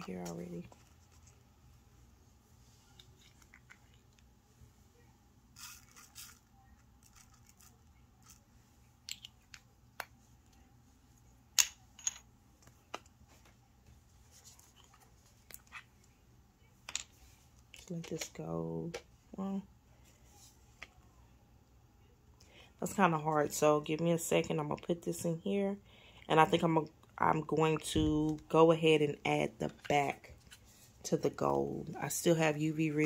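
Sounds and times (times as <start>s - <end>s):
faint steady hum: 0.0s - 33.0s.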